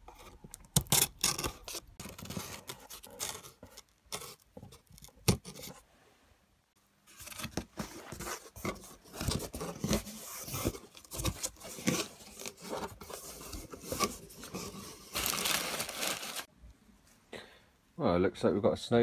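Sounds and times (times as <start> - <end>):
cardboard box scraping and tearing: 7.2 - 16.5
packaging rustling: 7.2 - 16.5.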